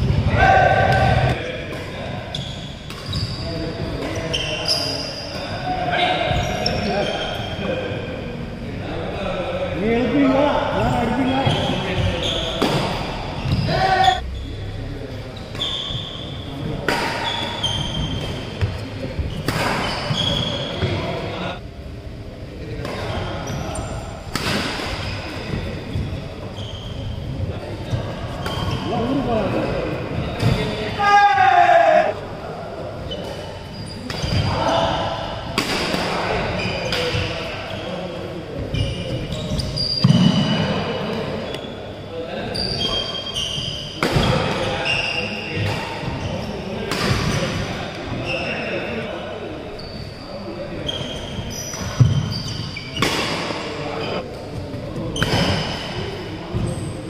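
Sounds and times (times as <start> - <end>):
players' voices: 0.0 - 57.0
shoes squeaking on court floor: 2.3 - 7.7, 10.9 - 14.5, 15.3 - 21.0, 25.0 - 29.5, 33.0 - 34.9, 36.3 - 49.0, 49.7 - 57.0
rackets hitting shuttlecock: 52.9 - 53.6.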